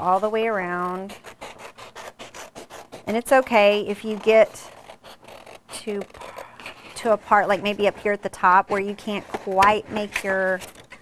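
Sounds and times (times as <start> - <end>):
scissors snipping paper: 0.0 - 11.0.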